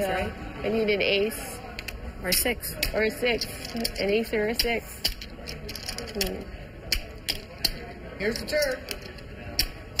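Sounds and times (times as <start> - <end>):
poker chips clicking: 3.4 - 9.7.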